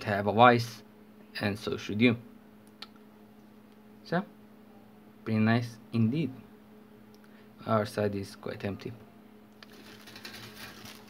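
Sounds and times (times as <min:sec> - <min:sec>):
low steady hum: 0:00.0 - 0:11.0
plastic sprues rustling and clicking: 0:09.6 - 0:11.0.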